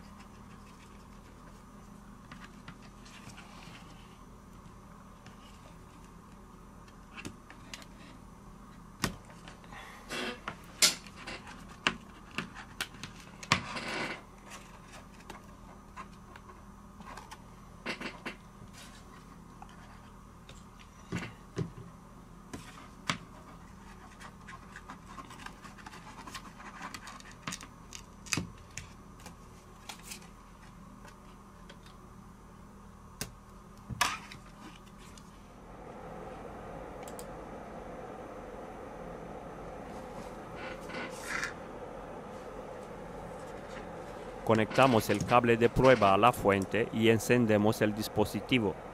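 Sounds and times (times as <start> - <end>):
faint steady hum: 0.0 - 48.9.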